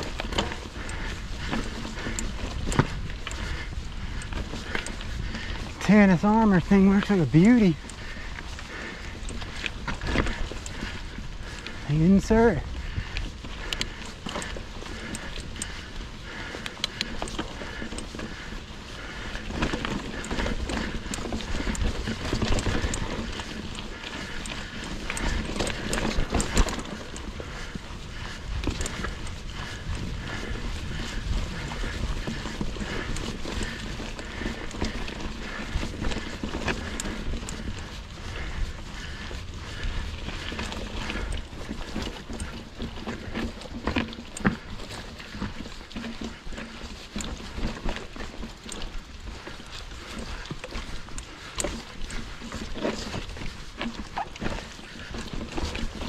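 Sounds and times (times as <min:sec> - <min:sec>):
wind rumble on microphone: 0:00.0 - 0:45.7
bike chain and frame rattling: 0:00.0 - 0:56.0
tyres crunching on dirt: 0:00.0 - 0:56.0.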